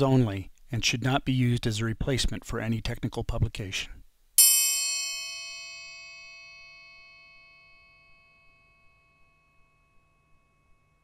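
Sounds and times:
bell-like chime ringing: 4.4 - 11.0.

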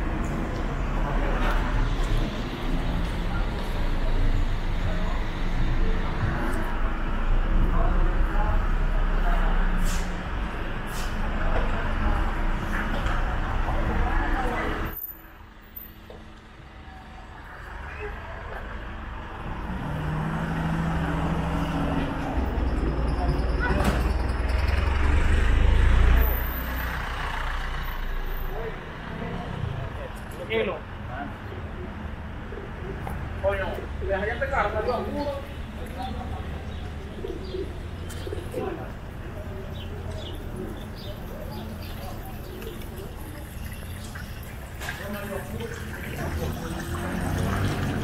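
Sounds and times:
car engine approaching: 15.6 - 48.0
pigeons cooing: 36.5 - 43.5.

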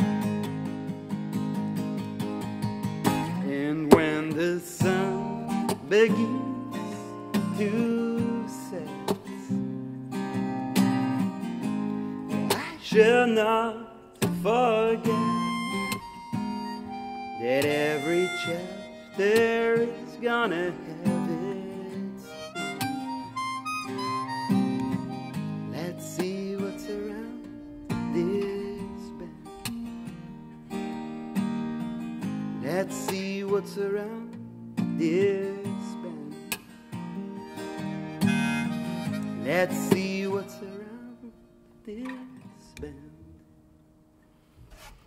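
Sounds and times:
acoustic guitar picking: 0.0 - 45.0
person singing: 3.3 - 9.6, 12.4 - 16.2, 16.8 - 29.5, 35.0 - 36.5, 39.1 - 43.4
harmonica melody: 14.4 - 29.4, 37.0 - 41.4
brief rub: 44.6 - 45.0.

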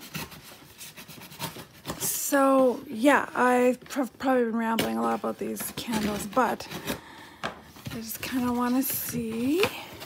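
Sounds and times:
hands rubbing a package: 0.0 - 2.3.

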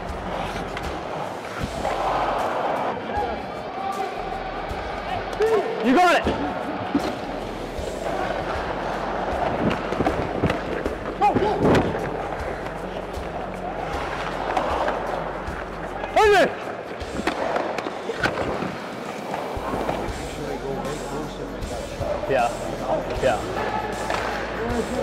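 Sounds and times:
sticks and puck clacking: 0.0 - 3.2, 5.3 - 20.2, 23.0 - 25.0
arena crowd noise: 0.0 - 25.0.

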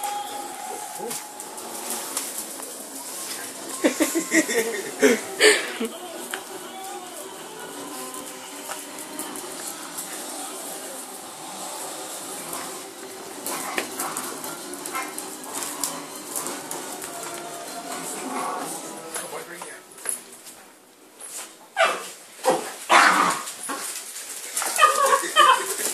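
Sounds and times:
indistinct voice: 0.0 - 14.7
wrapping paper tearing: 0.0 - 19.3, 22.8 - 25.9
low background music: 0.0 - 21.7
dogs clicking over tiled floor: 0.0 - 25.9.

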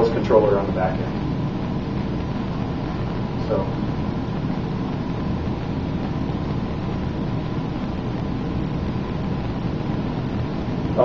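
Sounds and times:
air conditioning hiss and rumble: 0.0 - 11.0.

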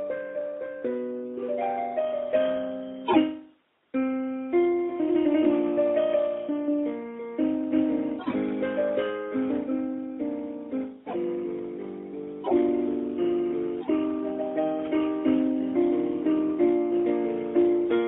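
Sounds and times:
solo piano playing: 0.0 - 18.0.

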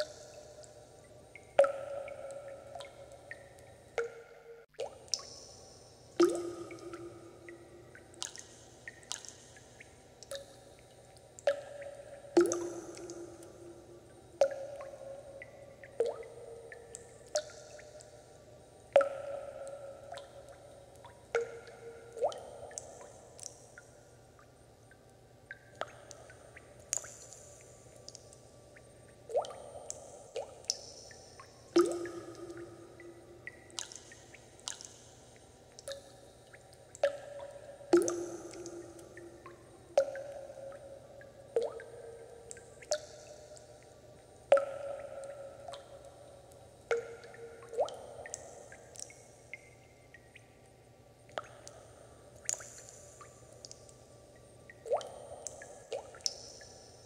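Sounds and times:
water drops plinking into water: 0.0 - 57.0.

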